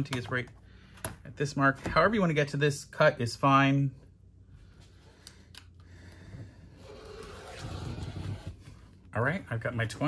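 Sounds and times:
rotary cutter cutting fabric: 6.8 - 8.5.

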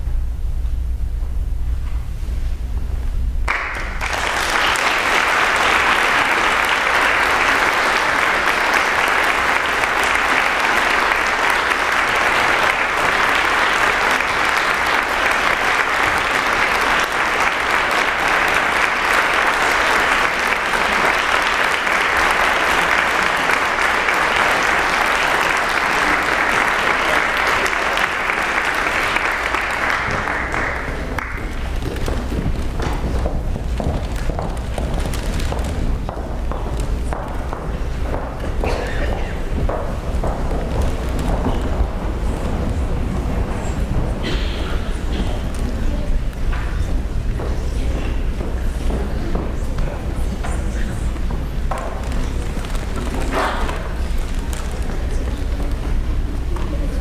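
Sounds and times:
audience applause: 3.5 - 57.0.

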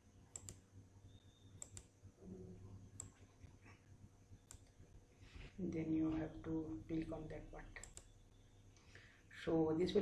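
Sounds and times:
computer mouse clicks: 0.3 - 0.6, 1.6 - 1.9, 3.0 - 3.2, 4.4 - 4.8, 7.8 - 8.1.

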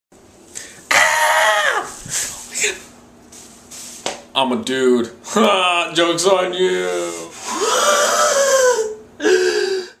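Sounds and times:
boy wailing: 0.9 - 2.0, 7.4 - 9.9.

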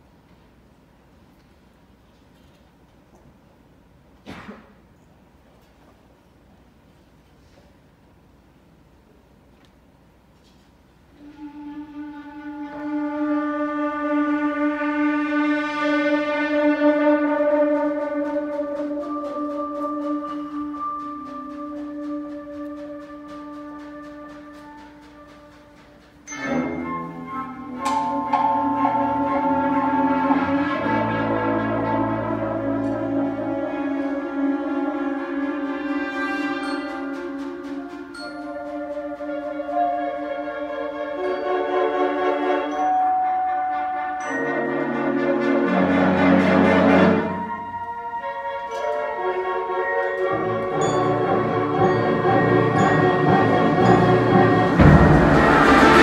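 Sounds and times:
wind band playing: 11.1 - 56.0.

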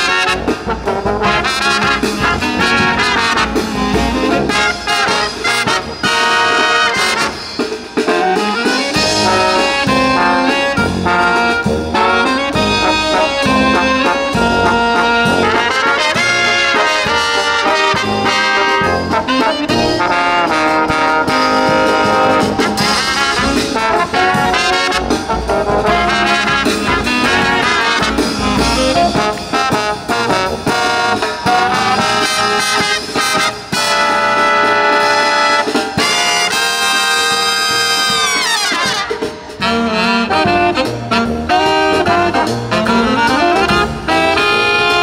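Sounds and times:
brass marching band playing: 0.0 - 45.0
snare and bass drum: 0.0 - 45.0.

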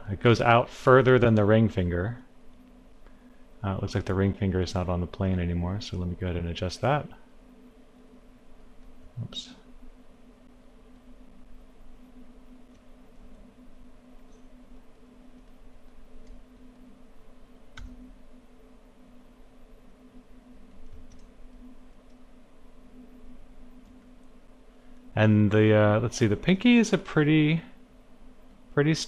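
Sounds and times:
steady low hum: 0.0 - 29.0
computer clicks: 17.7 - 18.1, 20.7 - 22.2.

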